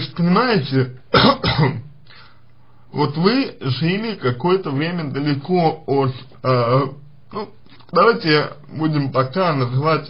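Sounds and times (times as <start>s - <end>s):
man clearing throat: 1.1s - 1.9s
faint breath: 2.0s - 3.0s.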